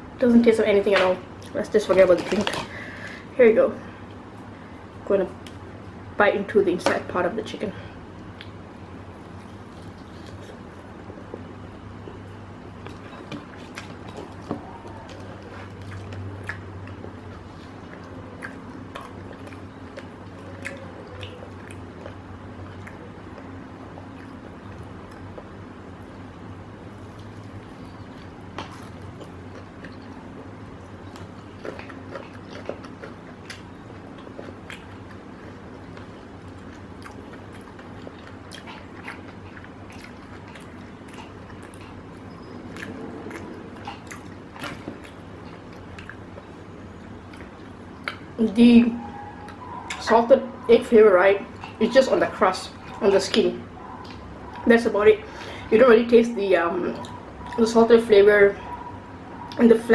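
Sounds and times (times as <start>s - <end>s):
steady low hum: 0.0s - 59.9s
person chewing food: 8.2s - 26.2s, 26.8s - 48.4s.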